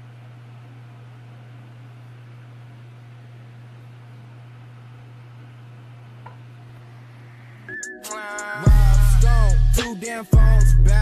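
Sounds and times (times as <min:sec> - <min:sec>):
music: 0:07.5 - 0:11.0
high tone: 0:07.6 - 0:11.0.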